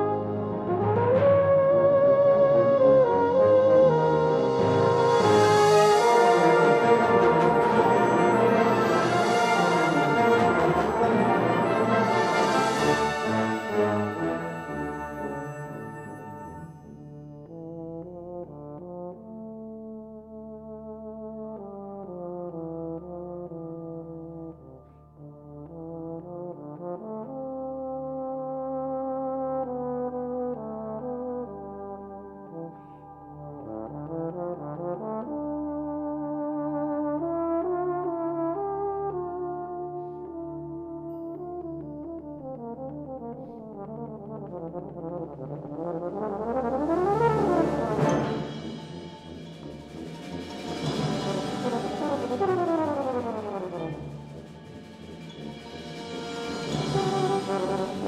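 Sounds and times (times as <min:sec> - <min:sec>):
military brass band music: 0:00.0 - 0:58.0.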